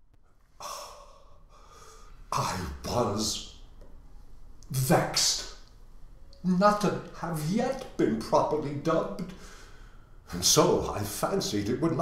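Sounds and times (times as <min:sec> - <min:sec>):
man gasping breath: 0:00.6 - 0:02.3, 0:09.4 - 0:10.2.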